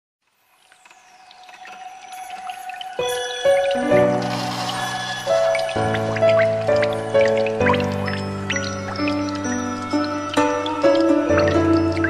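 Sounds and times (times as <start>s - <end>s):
pouring water sound effect: 0.2s - 12.0s
small water drips: 0.5s - 12.0s.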